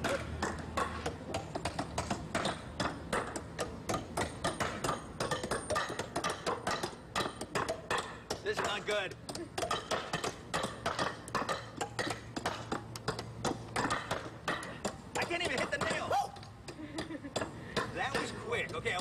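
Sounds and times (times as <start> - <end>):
hammers driving nails into wood: 0.0 - 19.0.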